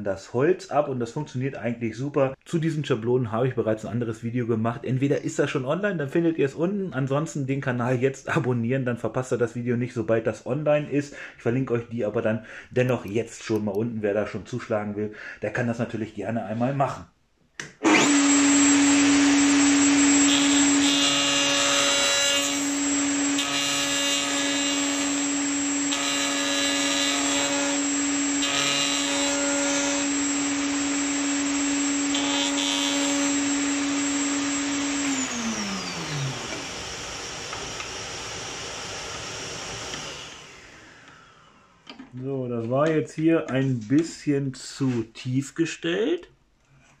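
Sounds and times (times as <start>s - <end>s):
router bit cutting wood: 17.8s - 41.5s
router whining: 17.8s - 42.0s.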